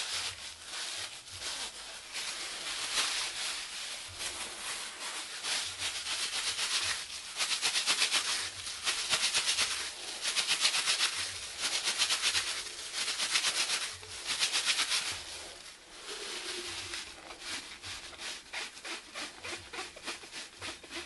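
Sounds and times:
cloth rubbing on clay pot: 0.0s - 21.0s.

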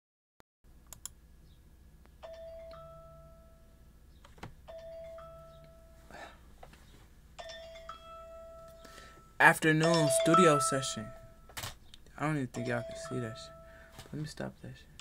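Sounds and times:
bell-like two-note hip-hop beat: 7.4s - 11.5s, 12.4s - 14.1s.

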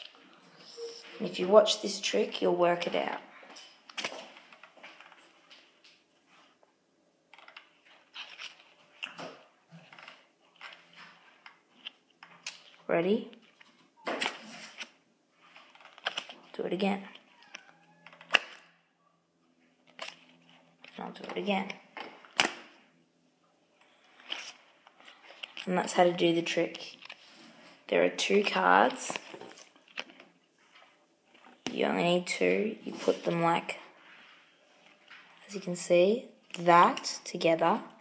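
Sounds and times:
card clicks and rustles: 3.6s - 5.9s, 7.3s - 18.7s, 19.8s - 22.8s, 23.8s - 26.0s, 26.7s - 27.5s, 28.3s - 31.7s
playing card snapping: 18.1s - 18.6s, 22.3s - 22.7s
playing card snap: 22.3s - 22.7s.

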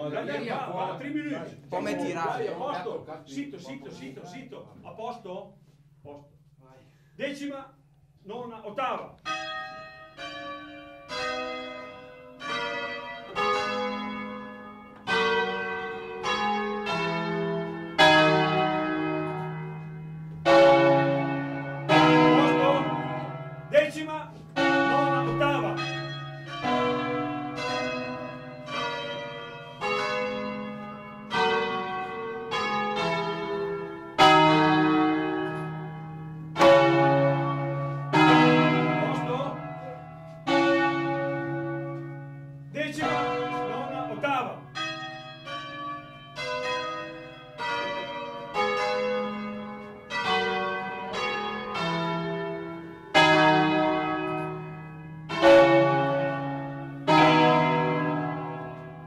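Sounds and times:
church bells ringing: 0.0s - 4.6s, 8.4s - 59.0s.

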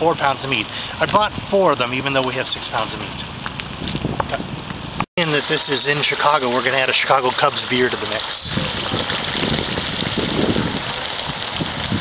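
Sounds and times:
meat sizzling in a pot: 5.2s - 12.0s.

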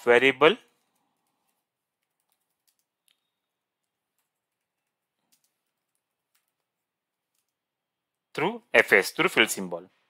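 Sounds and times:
faint keyboard keystrokes: 0.7s - 7.7s.

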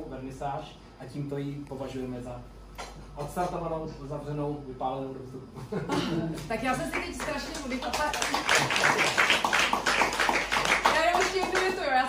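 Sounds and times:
applause: 6.8s - 12.0s.

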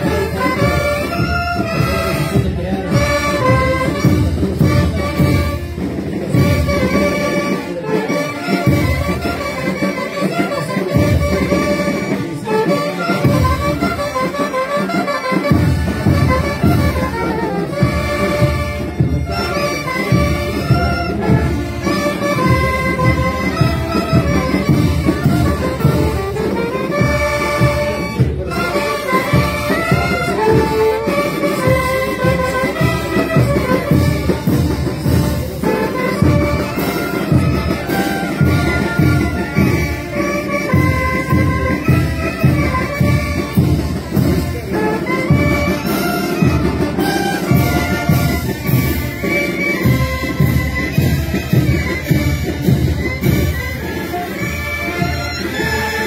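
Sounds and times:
saxophones and brass playing: 0.0s - 56.0s
steady drum beat: 0.0s - 56.0s.

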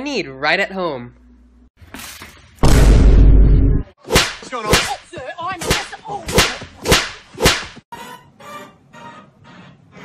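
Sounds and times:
sharp loud smacks: 4.1s - 5.0s, 5.6s - 7.8s.

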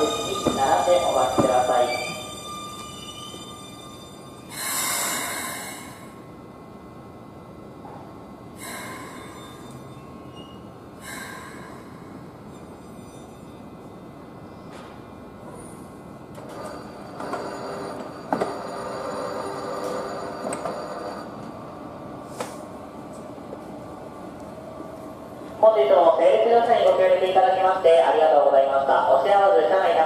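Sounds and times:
public address announcement: 0.0s - 4.0s, 24.6s - 30.0s.

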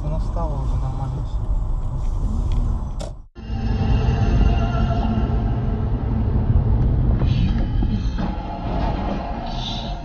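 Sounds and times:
car engine and road rumble: 0.0s - 8.6s.

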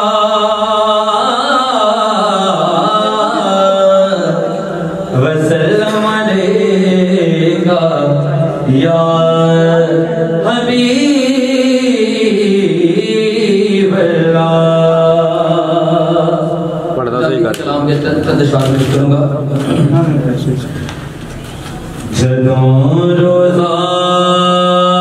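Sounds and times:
man singing devotional poem: 0.0s - 17.0s, 22.1s - 25.0s.

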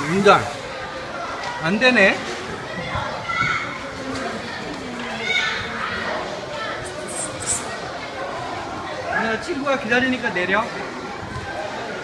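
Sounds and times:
children chattering and shouting: 0.0s - 12.0s.

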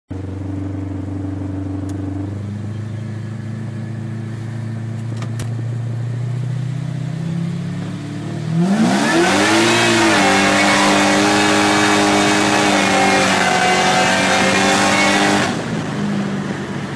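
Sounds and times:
car engine running at low revs: 0.1s - 16.9s.

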